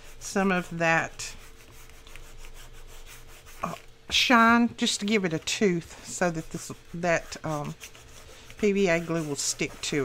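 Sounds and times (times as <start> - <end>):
file scuffing notebook cover: 0.0 - 3.8, 4.4 - 10.0.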